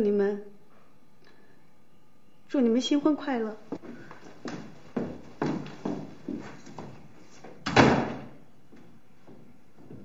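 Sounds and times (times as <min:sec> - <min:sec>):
wooden door banging shut: 0:07.6 - 0:08.4.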